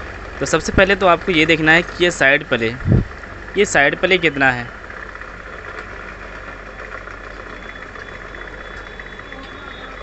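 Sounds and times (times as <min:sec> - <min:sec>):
steady background hum: 0:00.0 - 0:10.0
faint high tone: 0:07.4 - 0:10.0.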